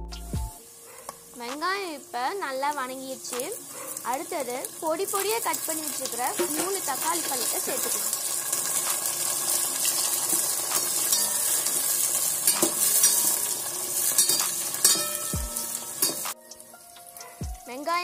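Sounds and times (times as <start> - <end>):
vegetables sizzling in hot oil: 0.6 - 18.0.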